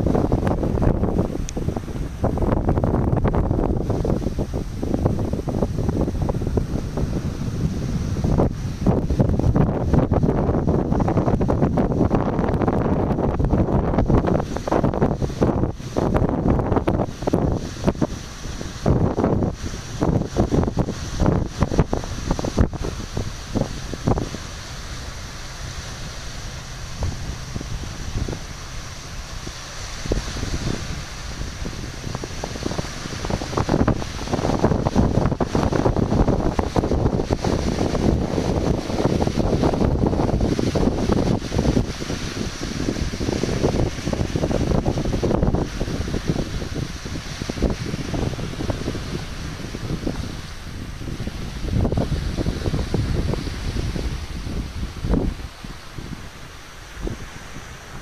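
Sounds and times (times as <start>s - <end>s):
waves washing over pebbles: 0.0s - 58.0s
wind buffeting microphone: 0.0s - 58.0s.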